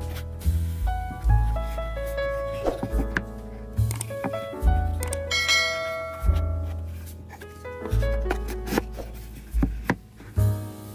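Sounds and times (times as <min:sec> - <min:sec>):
bell-like chiming notes: 0:05.3 - 0:06.7.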